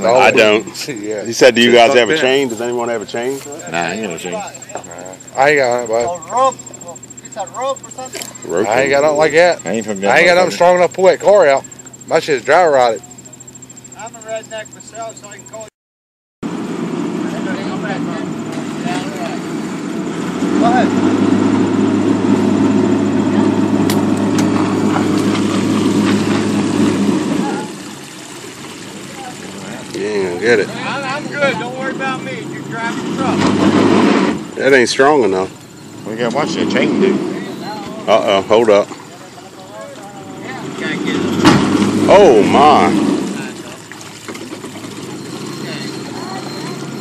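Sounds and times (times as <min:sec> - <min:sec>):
faint voices: 0:00.0 - 0:15.7
pickup truck engine running: 0:00.0 - 0:15.7, 0:16.5 - 0:47.0.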